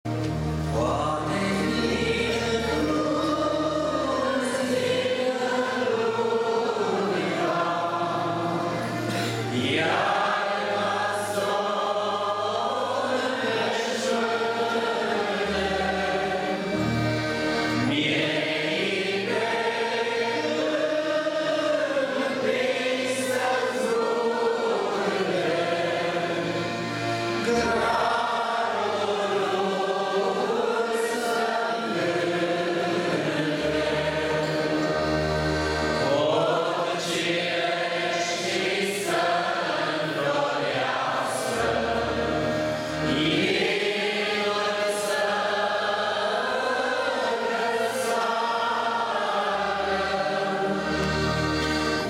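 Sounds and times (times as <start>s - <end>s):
women's choir singing a hymn: 0.1s - 52.0s.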